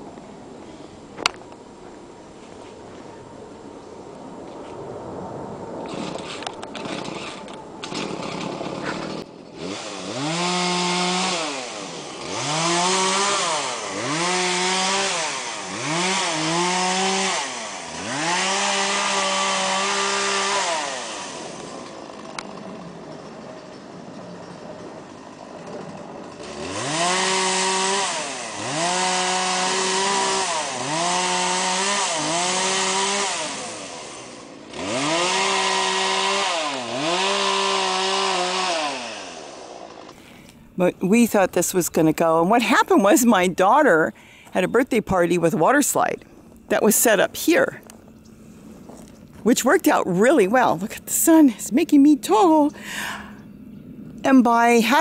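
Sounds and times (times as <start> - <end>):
chainsaw revving and idling: 5.9 - 24.1, 24.8 - 41.1.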